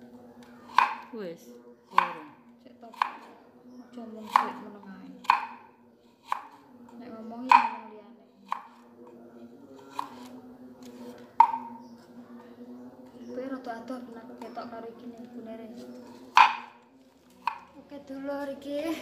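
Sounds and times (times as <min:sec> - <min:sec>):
knife chopping on wooden board: 0:00.7 - 0:01.1, 0:01.9 - 0:02.2, 0:02.9 - 0:03.3, 0:04.2 - 0:06.6, 0:07.5 - 0:07.9, 0:08.5 - 0:08.8, 0:16.3 - 0:16.7.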